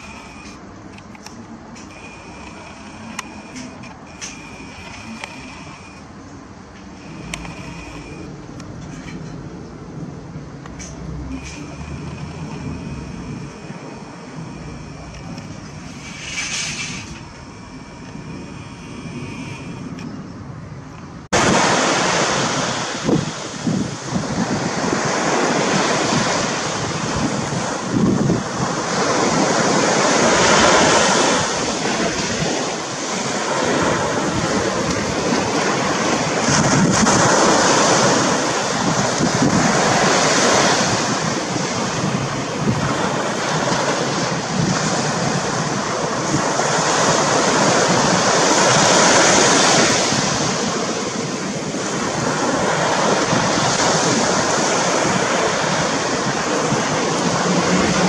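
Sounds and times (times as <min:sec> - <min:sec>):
loud steady rushing noise: 0:00.0 - 0:58.0.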